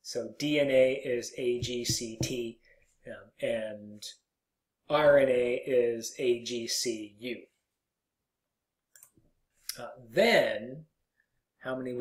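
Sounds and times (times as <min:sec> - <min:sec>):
person speaking: 0:00.0 - 0:04.2.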